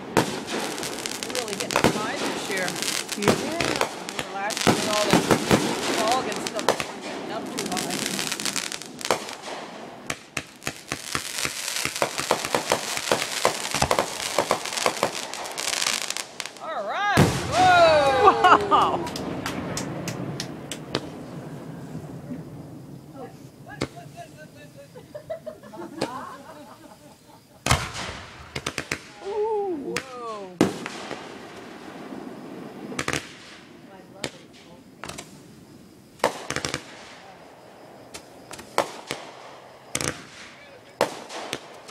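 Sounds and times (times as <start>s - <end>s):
fireworks crackling: 0.0s - 41.9s.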